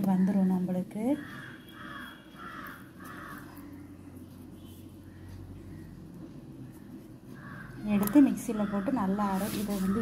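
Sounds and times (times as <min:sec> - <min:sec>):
bird cawing: 0:01.2 - 0:04.0, 0:07.3 - 0:09.2.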